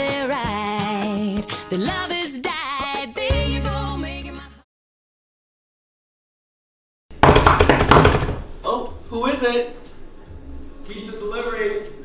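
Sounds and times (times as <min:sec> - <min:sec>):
loud knocks on wooden door: 0:07.1 - 0:08.5.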